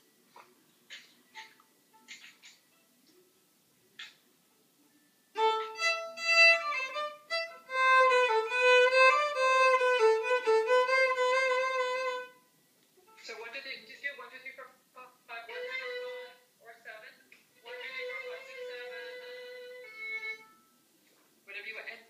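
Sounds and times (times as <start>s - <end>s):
violin bowed with trill: 5.4s - 12.4s, 15.5s - 16.4s, 17.6s - 20.7s.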